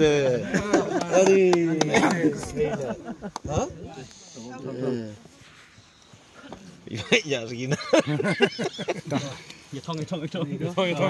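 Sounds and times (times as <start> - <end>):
men's voices: 0.0 - 11.0.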